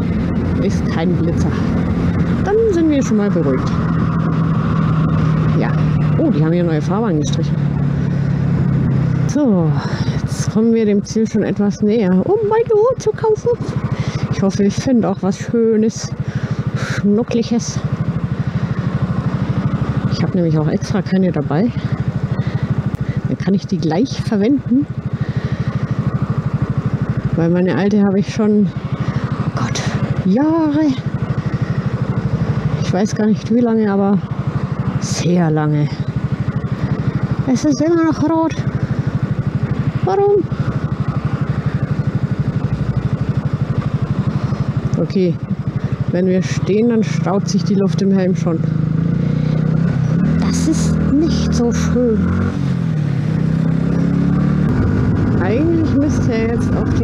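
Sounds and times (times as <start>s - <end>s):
motorcycle engine running: 0.0s - 57.0s
wind and road noise: 0.0s - 57.0s.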